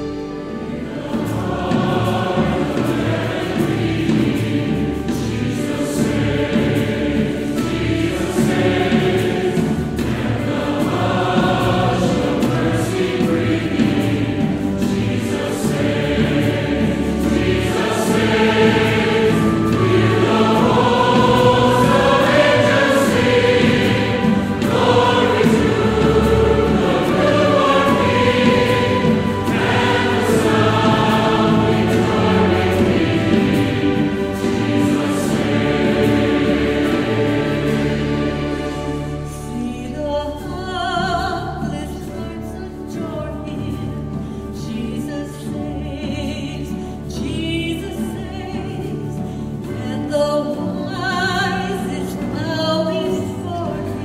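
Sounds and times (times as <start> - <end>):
choir singing a hymn: 0.0 - 54.0
harp: 0.0 - 54.0
orchestra: 0.0 - 54.0
strings: 0.0 - 54.0.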